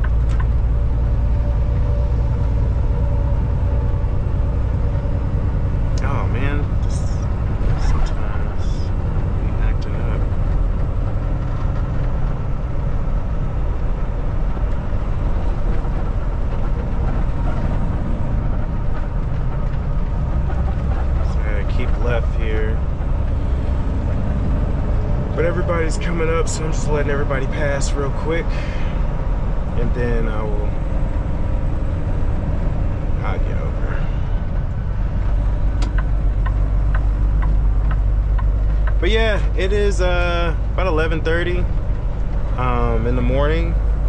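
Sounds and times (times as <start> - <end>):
road noise: 0.0 - 44.0
truck engine drone: 0.0 - 44.0.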